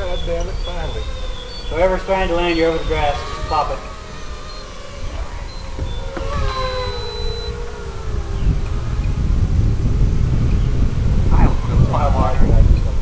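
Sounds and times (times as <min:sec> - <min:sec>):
drone motors whining: 0:00.0 - 0:13.0
wind rumble on microphone: 0:00.0 - 0:13.0.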